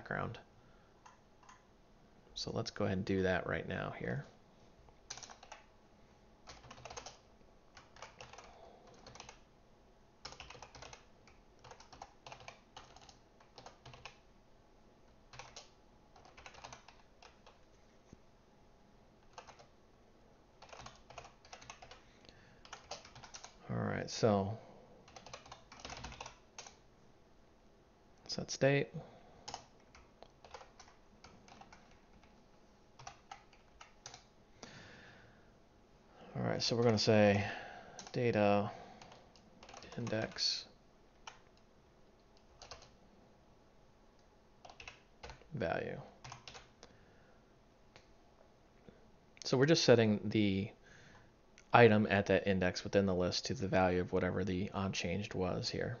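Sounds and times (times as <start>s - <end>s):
faint keyboard typing: 1.0s - 1.7s, 4.9s - 5.7s, 6.4s - 9.5s, 10.2s - 14.3s, 15.0s - 18.2s, 19.2s - 19.8s, 20.6s - 26.8s, 28.2s - 34.8s, 36.5s - 43.0s, 44.1s - 47.0s, 47.9s - 48.2s.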